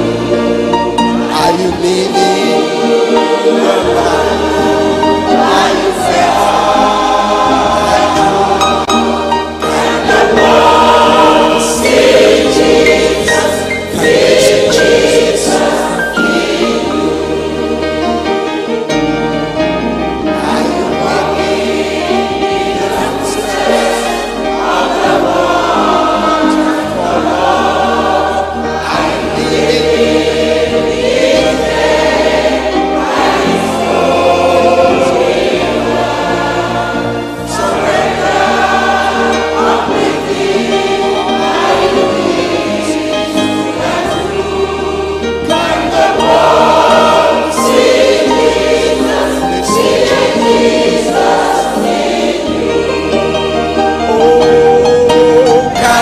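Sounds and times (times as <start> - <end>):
choir singing a hymn: 0.0 - 56.0
keyboard accompaniment: 0.0 - 56.0.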